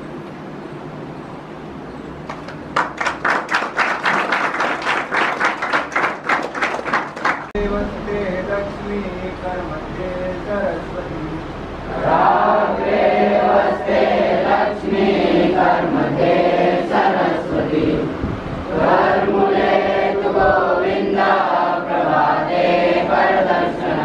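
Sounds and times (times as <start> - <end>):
boys chanting in unison: 11.9 - 18.1, 18.7 - 24.0.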